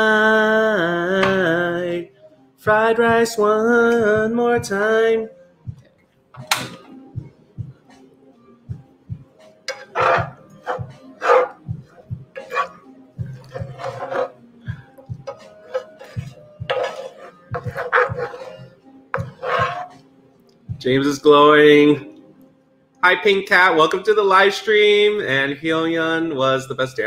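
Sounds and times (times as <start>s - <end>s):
faint music: 0.0s - 27.0s
spatula scraping frying pan: 9.7s - 20.1s.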